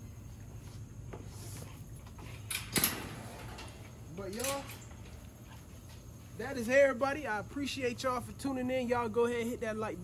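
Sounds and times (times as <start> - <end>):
metal kennel gate clanking: 2.5 - 5.1.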